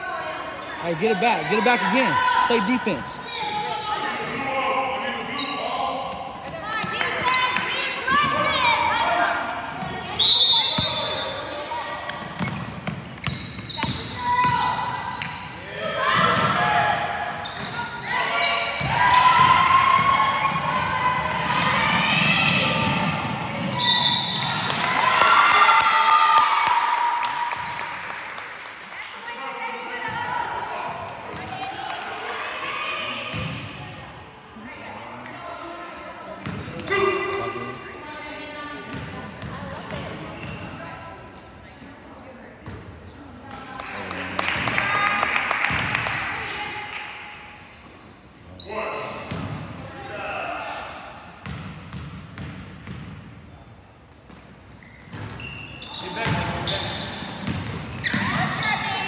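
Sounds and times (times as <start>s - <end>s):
sneakers squeaking on floor: 0.5s - 3.6s, 4.2s - 7.2s, 9.6s - 20.8s, 22.2s - 24.8s, 33.2s - 35.4s, 38.8s - 41.1s, 47.8s - 49.6s, 54.2s - 59.0s
players calling out: 0.6s - 4.4s
basketball bouncing on court: 12.1s - 15.4s, 36.4s - 37.0s, 51.4s - 53.3s, 56.2s - 58.6s.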